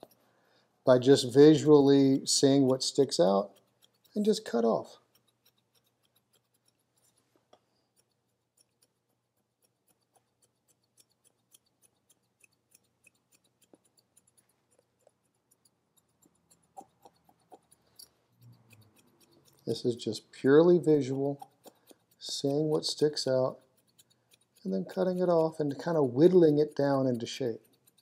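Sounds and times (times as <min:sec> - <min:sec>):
scissors snipping hair: 0:00.0 - 0:00.2, 0:00.9 - 0:28.0.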